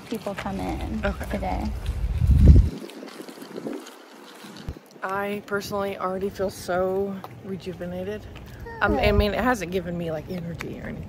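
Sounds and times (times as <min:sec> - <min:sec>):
wind on microphone: 0:00.8 - 0:04.8, 0:08.8 - 0:09.6.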